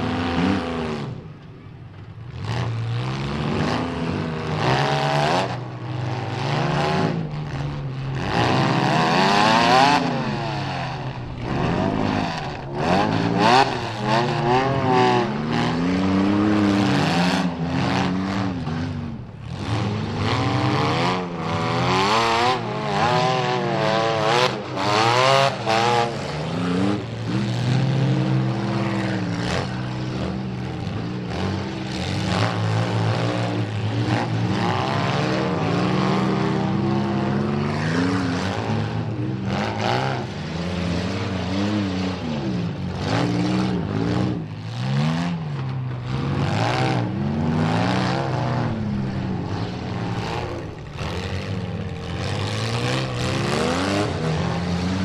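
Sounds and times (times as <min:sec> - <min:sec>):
car engines revving hard: 0:00.0 - 0:55.0.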